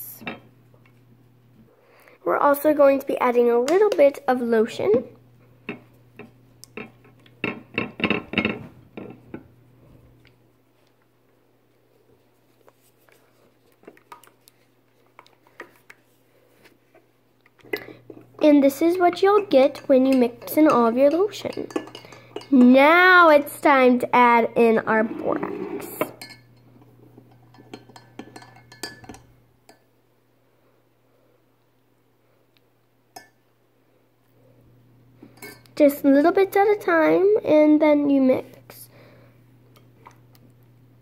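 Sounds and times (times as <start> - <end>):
low steady hum: 0.0 - 41.0
spoon clinking glass bowl: 19.4 - 22.7, 26.1 - 26.6, 27.3 - 29.9.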